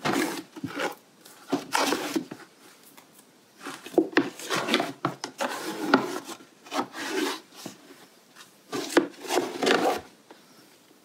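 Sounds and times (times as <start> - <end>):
plastic scraper scraping and knocking: 0.0 - 2.4, 3.8 - 7.8, 8.7 - 10.1.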